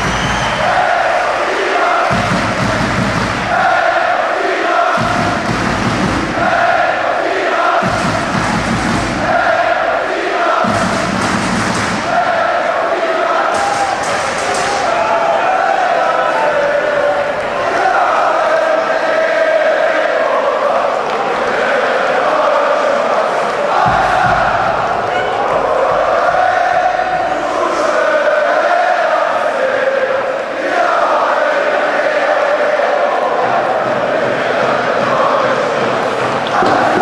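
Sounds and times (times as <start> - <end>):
crowd singing a chant: 0.0 - 37.0.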